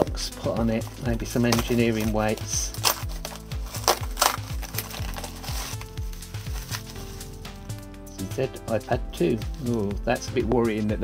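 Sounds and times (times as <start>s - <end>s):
background music with steady beat: 0.0s - 11.0s
paper wrapping crinkling: 1.4s - 7.4s
paper tearing: 1.5s - 7.3s.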